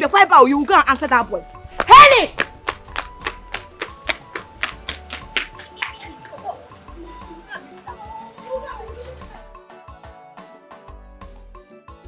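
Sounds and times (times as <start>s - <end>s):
sharp ticking beat: 2.4s - 6.3s.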